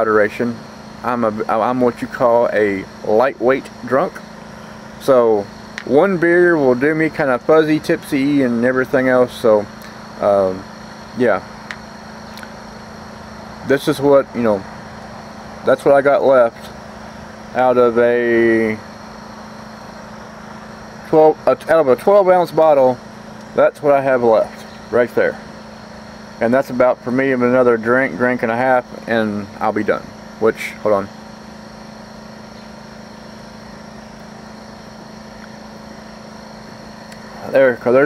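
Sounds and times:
steady low hum: 0:00.0 - 0:38.0
faint high steady tone: 0:15.6 - 0:38.0.

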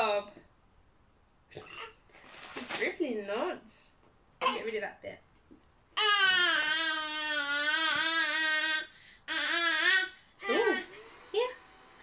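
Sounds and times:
baby shouting: 0:06.0 - 0:10.2.

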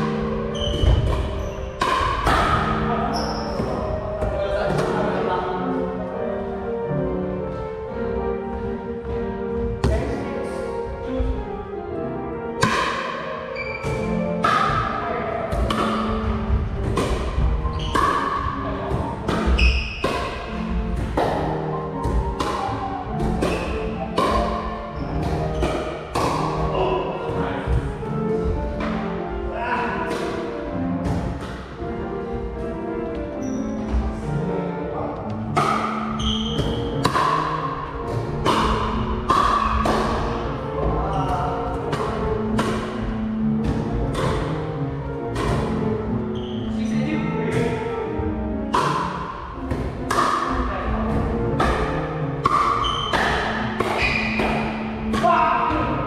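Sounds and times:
background music with sustained tones: 0:00.0 - 0:56.0
paddle hitting plastic ball: 0:15.6 - 0:26.6, 0:35.4 - 0:44.6, 0:48.7 - 0:55.8.

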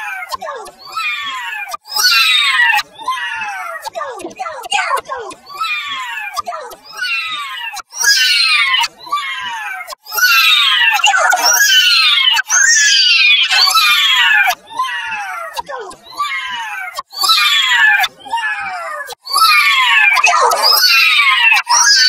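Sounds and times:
high-pitched processed voice crying: 0:00.0 - 0:22.0.

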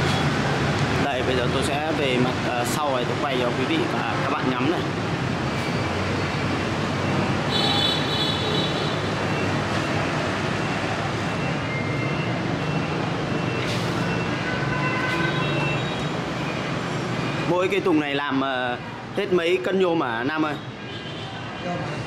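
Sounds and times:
road traffic noise: 0:00.0 - 0:22.0.

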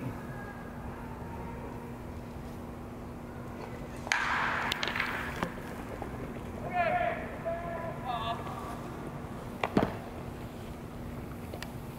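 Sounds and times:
bat hitting baseball: 0:04.1 - 0:05.7.

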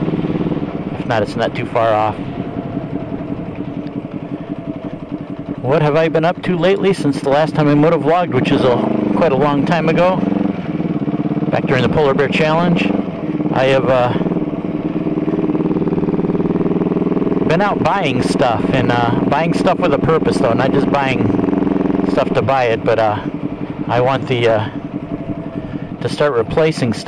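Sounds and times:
motorcycle engine running: 0:00.0 - 0:27.0.

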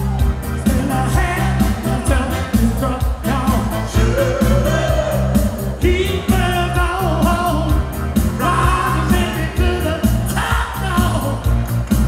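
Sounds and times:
backing band with bass beat: 0:00.0 - 0:12.0
vocal group singing live: 0:00.6 - 0:11.6.

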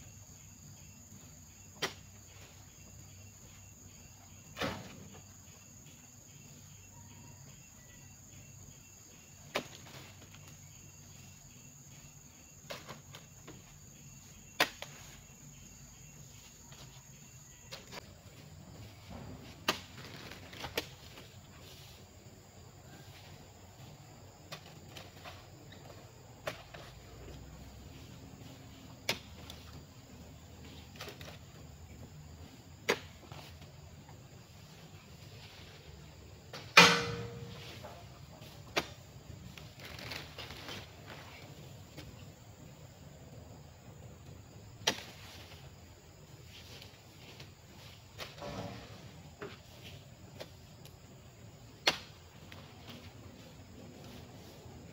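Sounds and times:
high insect tone: 0:00.0 - 0:54.9
metal spike knocks and thuds: 0:36.7 - 0:37.6.

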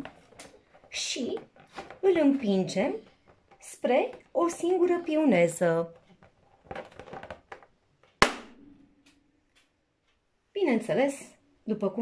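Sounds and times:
balloon bursting with loud pop: 0:08.2 - 0:08.7.

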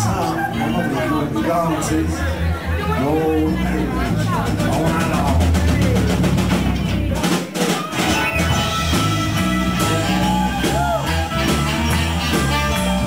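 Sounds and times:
live rock band playing: 0:00.0 - 0:13.0
drum hits: 0:04.4 - 0:12.6.

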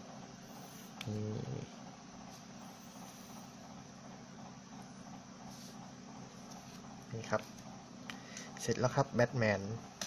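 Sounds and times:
man humming: 0:01.0 - 0:01.7.

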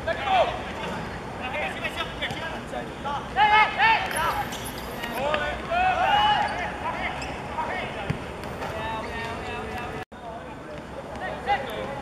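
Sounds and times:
players shouting: 0:03.3 - 0:07.1.

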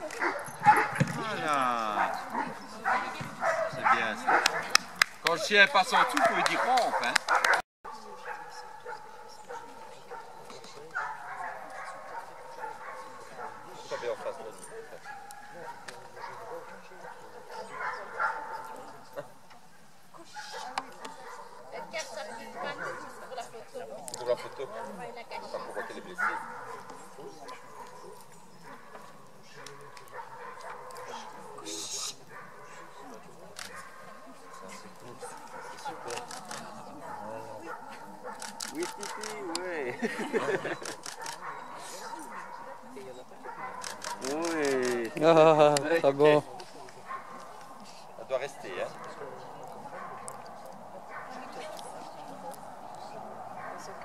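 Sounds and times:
voices in background: 0:00.0 - 0:54.0.

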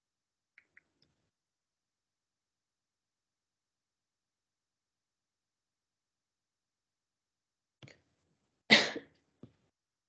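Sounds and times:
person coughing: 0:08.7 - 0:09.1.

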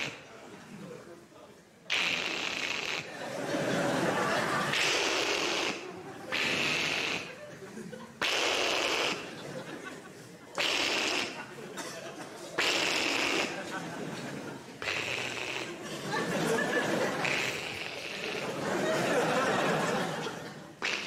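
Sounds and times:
audience laughing: 0:03.0 - 0:21.0.

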